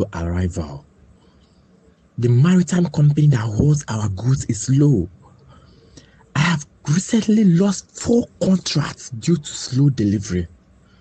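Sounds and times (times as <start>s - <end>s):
synthesized male voice speaking: 0.0s - 0.9s, 2.2s - 10.6s.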